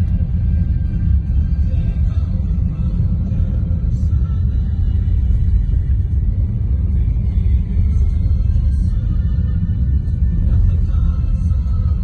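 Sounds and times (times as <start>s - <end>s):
car driving on snow: 0.0s - 12.0s
faint music: 0.0s - 12.0s.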